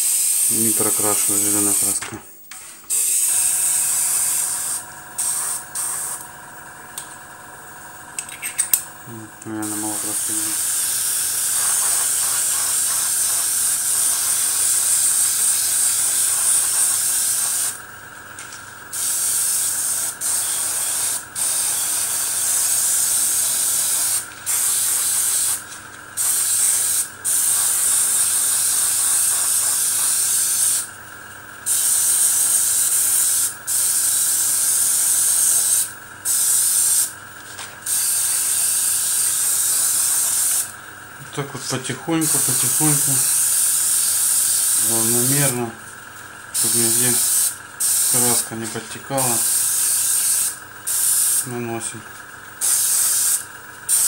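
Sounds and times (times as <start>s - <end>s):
airbrush spraying hiss: 0.0s - 2.0s, 2.8s - 6.3s, 9.5s - 17.8s, 18.9s - 30.9s, 31.6s - 40.7s, 41.3s - 51.8s, 52.6s - 54.0s
air compressor hum: 0.0s - 54.0s.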